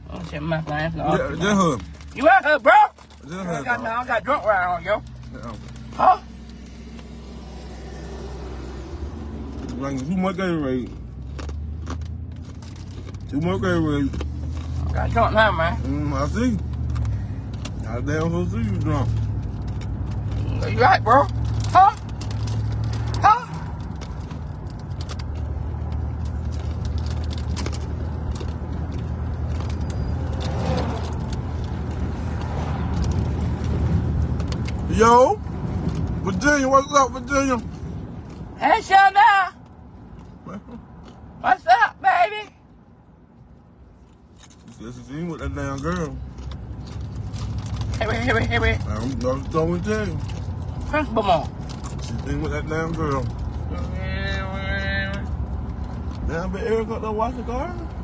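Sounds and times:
car engine humming: 0:00.0 - 0:58.0.

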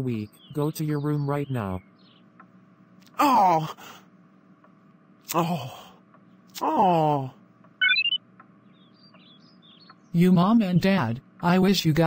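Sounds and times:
faint bird-like tweets: 0:00.0 - 0:02.6, 0:07.8 - 0:11.7
loud rising chirp: 0:07.8 - 0:10.0.

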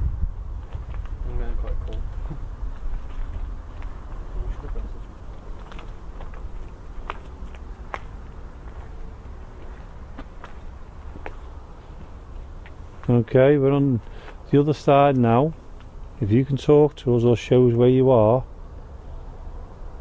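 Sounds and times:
wind buffeting microphone: 0:00.0 - 0:13.2
footsteps clicking and rustling: 0:00.5 - 0:16.0.

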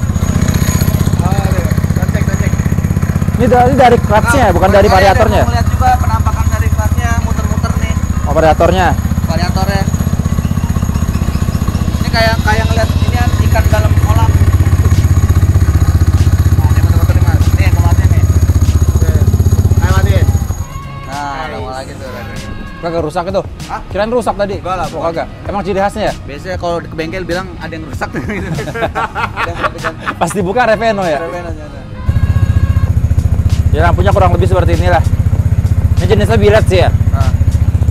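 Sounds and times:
scooter engine idling: 0:00.0 - 0:20.9, 0:32.0 - 0:37.9.

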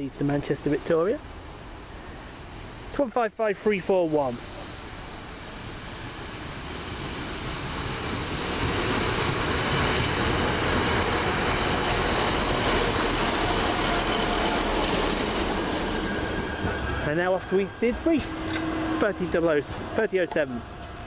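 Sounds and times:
diesel train engine rumble: 0:00.0 - 0:21.0
train wheels on rails: 0:03.8 - 0:21.0.

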